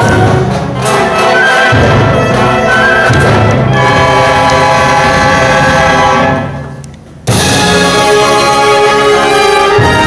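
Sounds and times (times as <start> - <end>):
concert wind band playing chords: 0.0 - 10.0.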